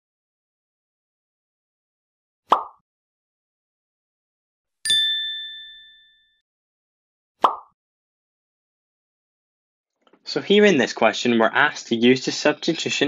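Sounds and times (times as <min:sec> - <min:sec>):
bright bell-like ding: 0:04.9 - 0:06.4.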